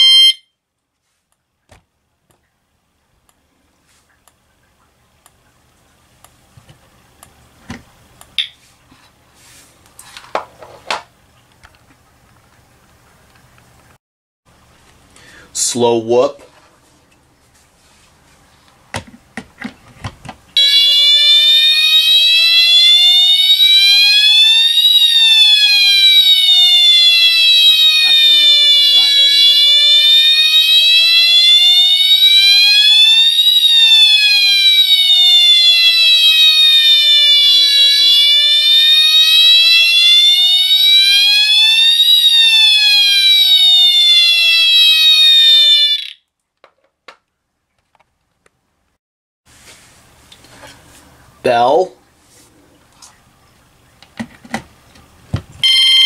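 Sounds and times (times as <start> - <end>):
fire alarm siren wail: 0.0 - 0.5, 20.6 - 46.2, 55.6 - 56.0.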